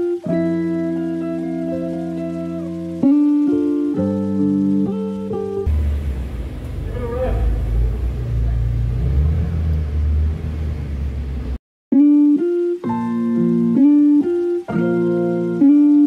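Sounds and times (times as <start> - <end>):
guitar music: 0.0 - 10.7, 11.9 - 16.0
car engine rumbling: 5.6 - 11.6.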